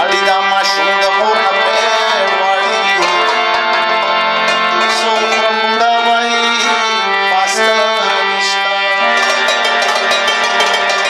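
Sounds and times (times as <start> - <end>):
plucked rabab notes: 0.0 - 7.6, 8.7 - 11.0
harmonium chords: 0.0 - 11.0.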